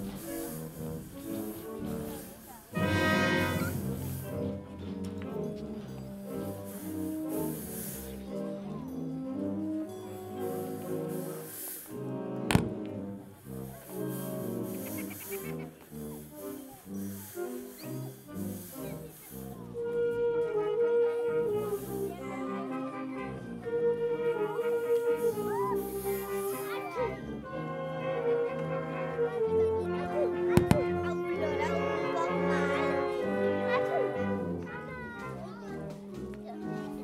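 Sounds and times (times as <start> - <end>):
brass melody of held notes: 0.0 - 37.0
wind band playing: 0.0 - 37.0.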